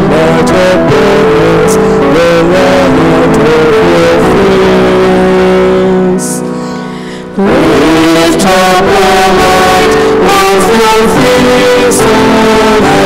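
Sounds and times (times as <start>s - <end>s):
person singing: 0.0s - 13.0s
strummed guitar chords: 0.0s - 13.0s.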